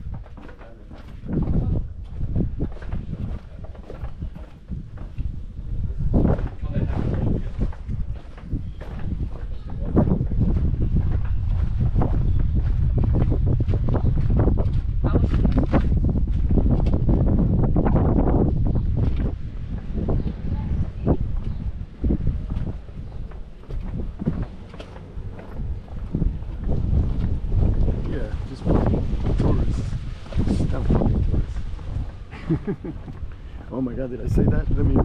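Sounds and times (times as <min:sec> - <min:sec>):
wind buffeting microphone: 0:00.0 - 0:35.0.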